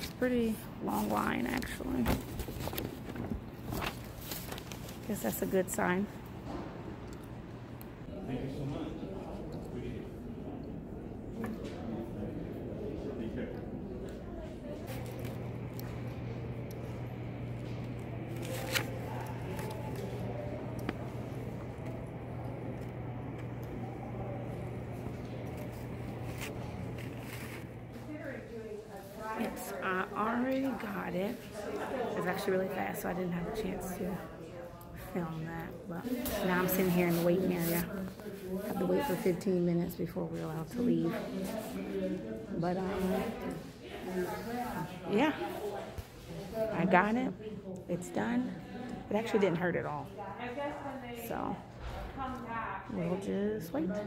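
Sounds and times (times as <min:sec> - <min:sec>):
low room hum: 0:00.0 - 0:54.0.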